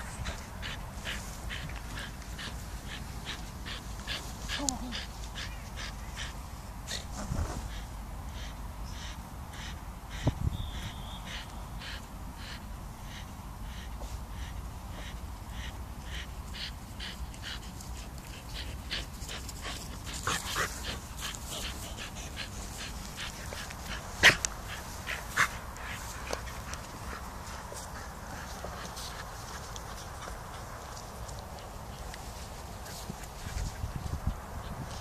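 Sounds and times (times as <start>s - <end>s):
soft regular ticks: 0.1s - 5.6s, 11.4s - 33.8s.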